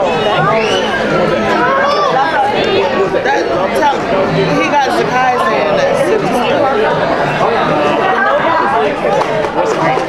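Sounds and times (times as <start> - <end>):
group chatter: 0.0 - 10.0.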